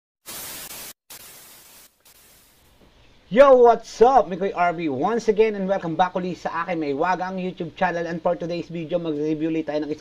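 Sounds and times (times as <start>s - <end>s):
static hiss bursts: 0.2s - 2.9s.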